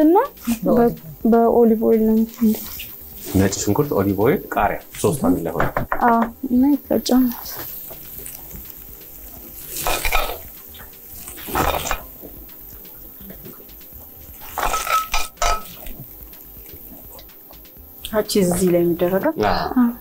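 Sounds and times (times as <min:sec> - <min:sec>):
frying pan scraping and clattering: 0:09.6 - 0:10.6, 0:14.4 - 0:16.0.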